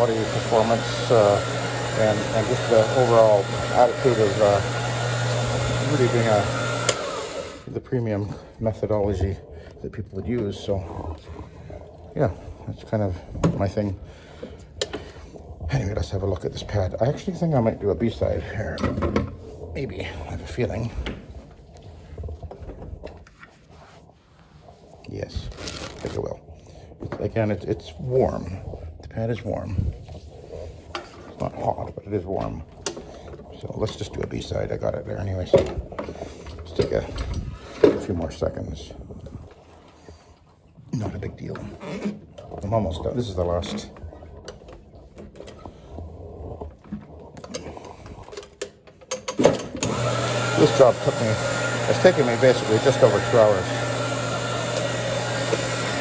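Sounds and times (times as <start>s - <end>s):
machine motor humming: 0.0s - 7.7s, 49.8s - 56.0s.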